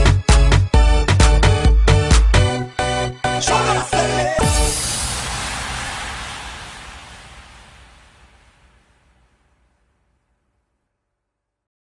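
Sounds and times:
hissy noise sweep effect: 4.4 - 9.4.

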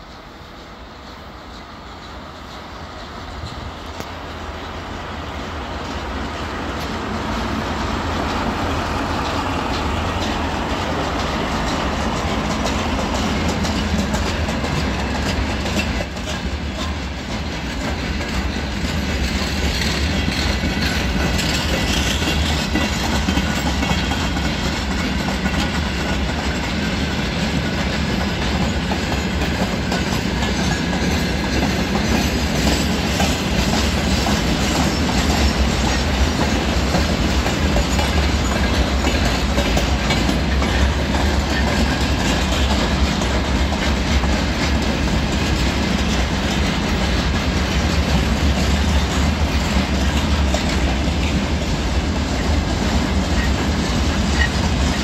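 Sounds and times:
freight train wheels rumbling: 0.0 - 55.0.

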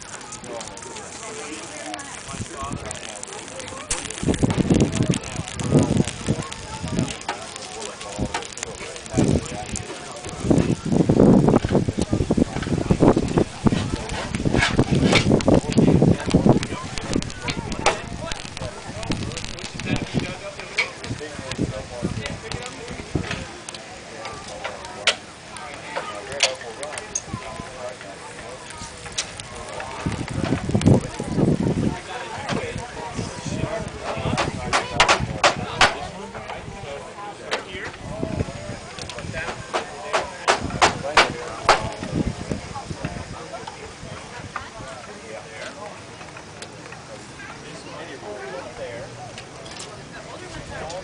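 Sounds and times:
flux sizzling and crackling: 0.0 - 51.0
voices chattering: 0.0 - 51.0
sharp clicks or pops: 2.0 - 21.2, 34.1 - 36.0, 39.0 - 42.1.

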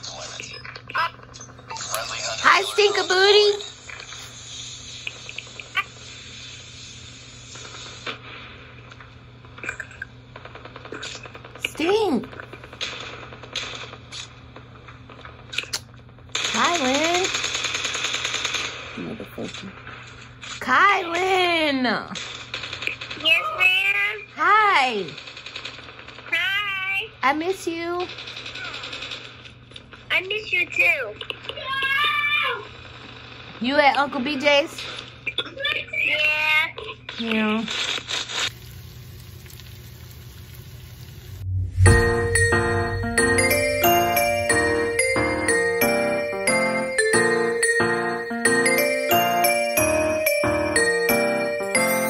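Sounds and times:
rapid bursts of gunfire: 16.3 - 19.0, 22.2 - 23.3, 25.2 - 26.3, 28.1 - 29.5
steady hiss: 38.4 - 41.6.

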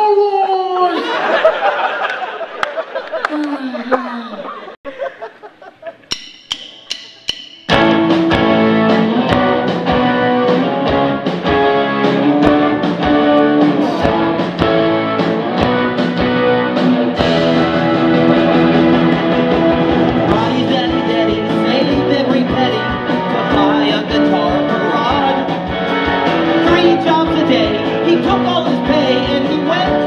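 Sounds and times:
drums playing steady beat: 6.0 - 30.0
count-in clicks: 6.1 - 8.1
bass guitar: 6.2 - 30.0
electric guitars: 7.7 - 30.0.

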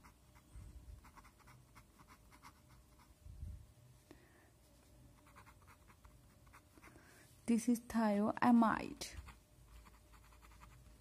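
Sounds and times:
pen scratching on paper: 1.0 - 3.1, 5.2 - 6.8, 9.2 - 11.0.

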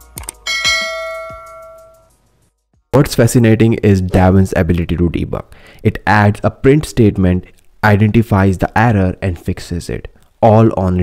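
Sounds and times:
bright bell chime: 0.5 - 2.1.

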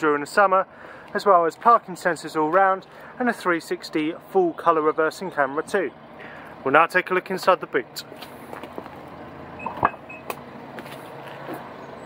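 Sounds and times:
powered tailgate lifting: 9.5 - 11.0
short high beeps: 9.6 - 10.3.

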